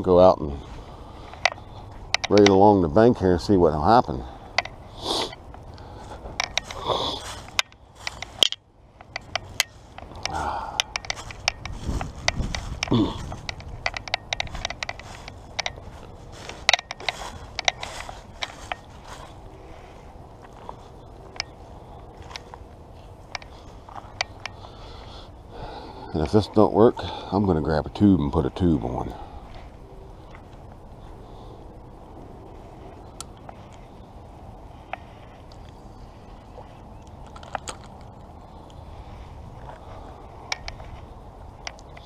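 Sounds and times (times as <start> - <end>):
footsteps on dry leaves: 4.8 - 8.4, 9.4 - 13.8, 14.5 - 25.0.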